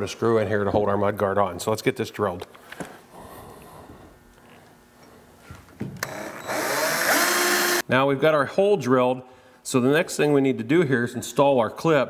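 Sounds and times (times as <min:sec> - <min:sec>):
cordless drill whining: 0:06.0 - 0:07.8.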